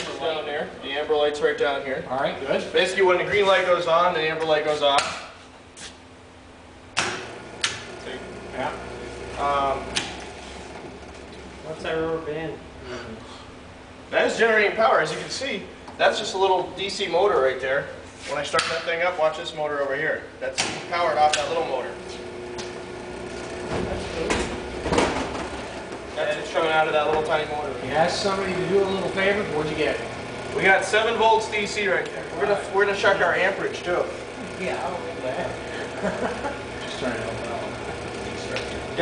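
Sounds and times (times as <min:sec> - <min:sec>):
low machine hum: 0:00.0 - 0:39.0.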